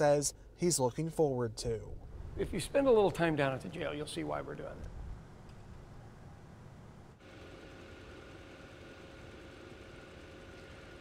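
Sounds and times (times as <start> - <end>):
faint mechanical hum: 0.0 - 11.0.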